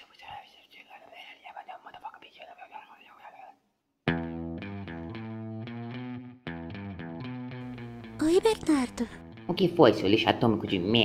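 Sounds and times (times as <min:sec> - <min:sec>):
man whispering: 0:00.0 - 0:03.7.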